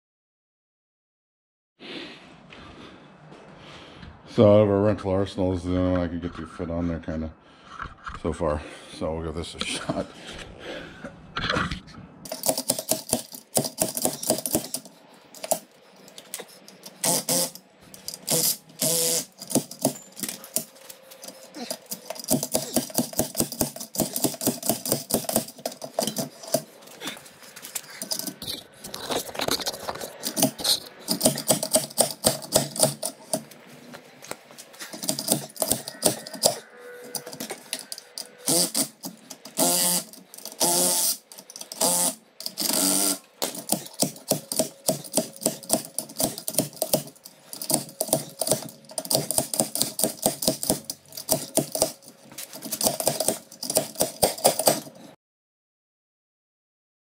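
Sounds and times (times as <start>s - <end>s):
hand ratchet clicking: 12.3s - 26.6s, 30.2s - 33.5s, 34.9s - 54.9s.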